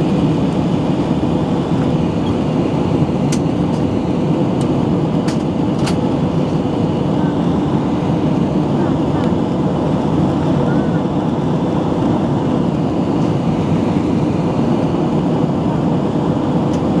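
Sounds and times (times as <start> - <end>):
airliner cabin noise: 0.0 - 17.0.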